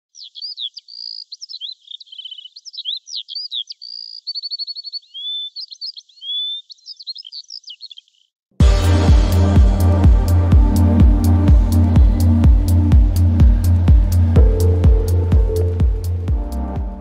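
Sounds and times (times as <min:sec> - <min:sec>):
bird singing: 0:00.0 - 0:08.3.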